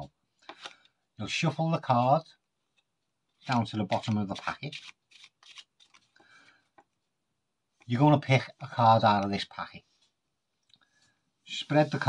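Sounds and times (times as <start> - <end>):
playing cards being shuffled: 0.4 - 0.9, 3.4 - 6.9.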